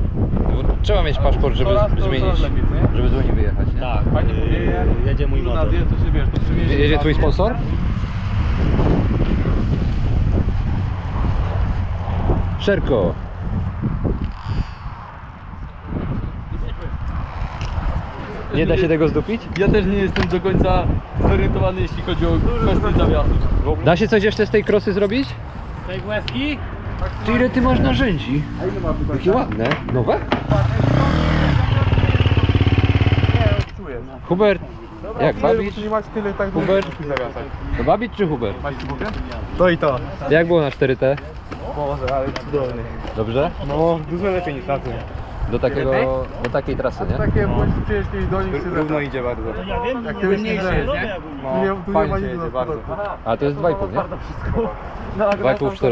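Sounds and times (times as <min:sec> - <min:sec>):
wind rumbling on microphone: 0:00.0 - 0:55.9
people talking: 0:00.5 - 0:07.7, 0:18.2 - 0:55.9.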